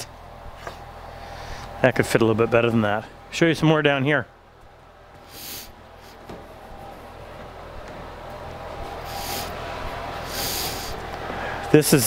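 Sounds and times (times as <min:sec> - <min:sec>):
low background hum: 0:00.0 - 0:12.0
nasal breaths: 0:01.1 - 0:01.8, 0:05.2 - 0:06.3, 0:09.0 - 0:11.7.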